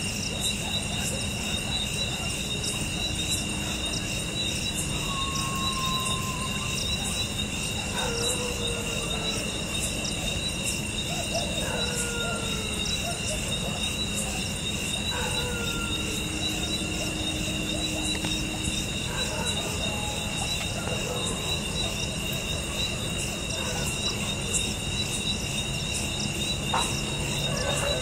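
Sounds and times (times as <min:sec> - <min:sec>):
crickets and insects chirring: 0:00.0 - 0:28.0
dogs howling: 0:00.2 - 0:28.0.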